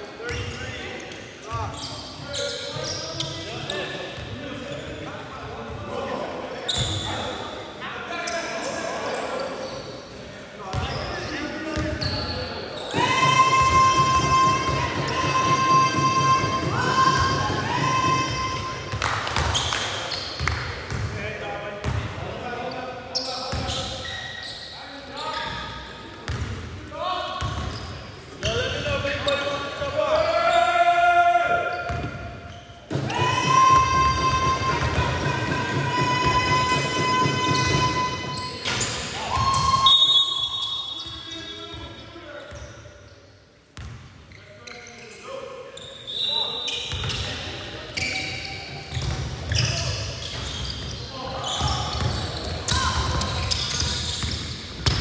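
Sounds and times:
players' voices: 0.0s - 43.0s, 44.3s - 55.0s.

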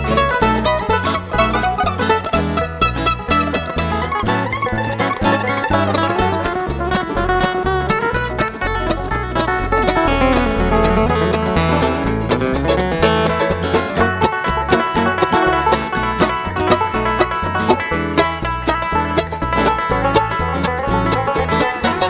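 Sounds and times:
acoustic guitar: 0.0s - 22.0s
banjo: 0.0s - 22.0s
bass line: 0.0s - 22.0s
picked mandolin: 0.0s - 22.0s.

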